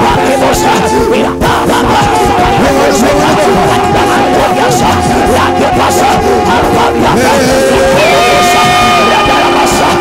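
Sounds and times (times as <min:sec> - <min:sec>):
church worship music: 0:00.0 - 0:10.0
crowd noise: 0:00.0 - 0:10.0
person singing a long note: 0:00.0 - 0:10.0.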